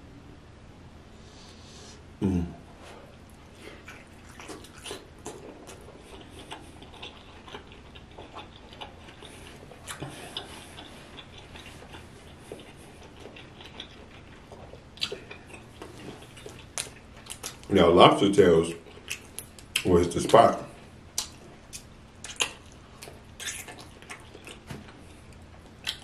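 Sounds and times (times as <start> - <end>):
wet chewing mouth clicks: 3.7 - 17.7, 18.8 - 19.9, 21.1 - 26.0.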